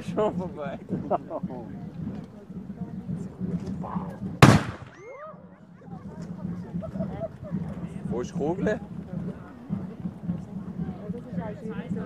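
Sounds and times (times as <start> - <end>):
onlookers' voices: 0.0 - 12.0
cannon bang: 4.4 - 5.0.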